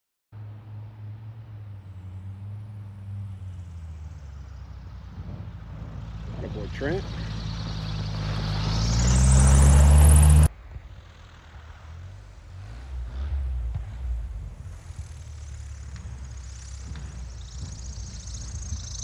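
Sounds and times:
plane engine and propeller: 0.4 - 19.0
propeller whine: 0.9 - 19.0
faint plane engine hum: 1.6 - 12.7, 13.8 - 19.0.

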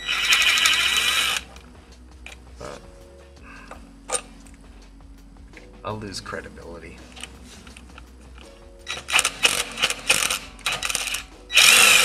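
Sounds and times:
impact wrench humming: 0.0 - 1.7, 8.9 - 12.0.

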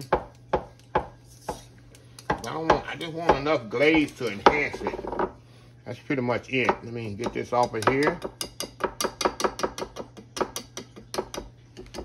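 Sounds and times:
whisk tapping plastic bowl: 6.6 - 12.0.

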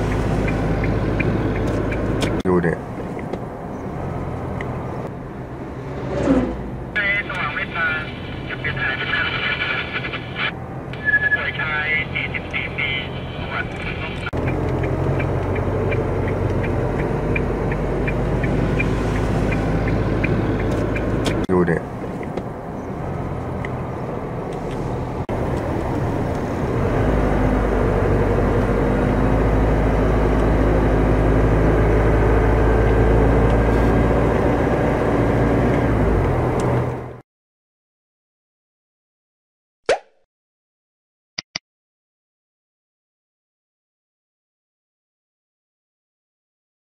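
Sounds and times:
car engine hum: 0.0 - 37.2
voices: 2.4 - 2.8, 7.0 - 14.4, 21.3 - 21.9.

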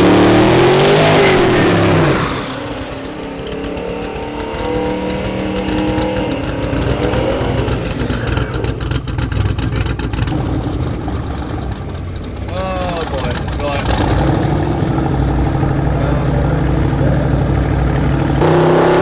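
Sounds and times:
tyres spinning: 0.0 - 18.5
car engine revving: 0.0 - 19.0.

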